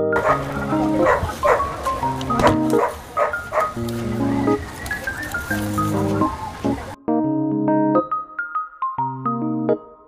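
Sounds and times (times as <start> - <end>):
electric piano chords: 0.0 - 10.0
bark-like calls: 0.1 - 5.3.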